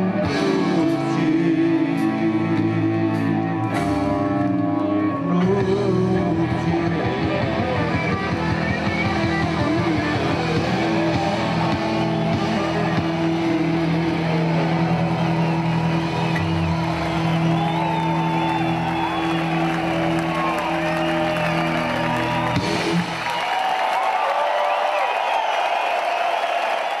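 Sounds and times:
rock band holding a chord: 0.0 - 23.6
crowd whistling and cheering: 0.0 - 27.0.

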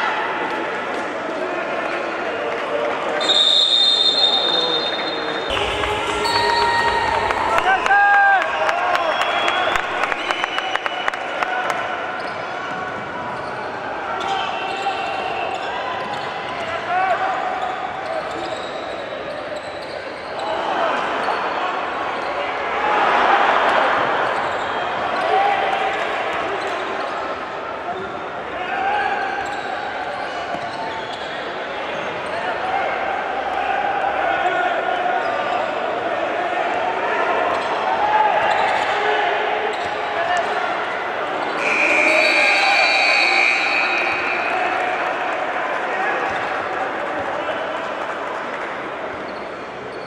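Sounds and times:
people shouting in a gym: 3.2 - 10.2, 11.3 - 19.5, 20.3 - 48.2.

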